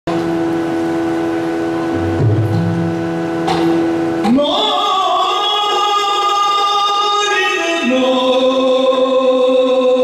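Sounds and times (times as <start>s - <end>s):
steady drone: 0.7s - 10.0s
low drum tones: 1.9s - 4.2s
sharp drum strokes: 1.9s - 4.4s.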